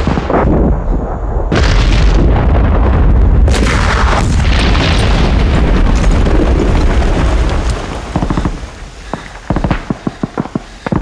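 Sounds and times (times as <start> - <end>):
loud explosion blasts: 0.0 - 8.8
heavy low rumble: 0.0 - 10.9.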